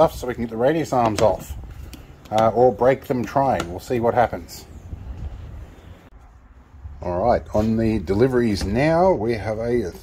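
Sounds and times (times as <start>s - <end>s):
wind rumble on microphone: 4.5s - 9.0s.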